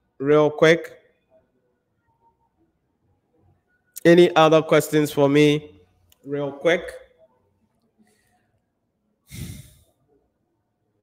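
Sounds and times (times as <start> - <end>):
man sighing: 9.3 - 9.8.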